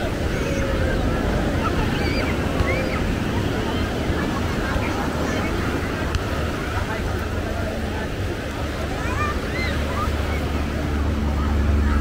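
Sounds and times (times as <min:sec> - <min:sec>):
faint distant voices: 0:00.0 - 0:12.0
surf washing up beach: 0:00.0 - 0:12.0
wind on microphone: 0:00.0 - 0:12.0.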